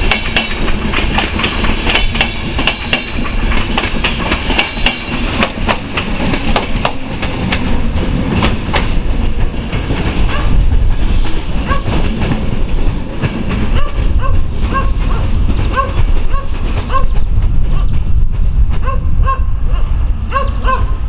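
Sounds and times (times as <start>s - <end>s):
train wheels clacking over rail joints: 0.0s - 19.1s
low train rumble: 0.0s - 21.0s.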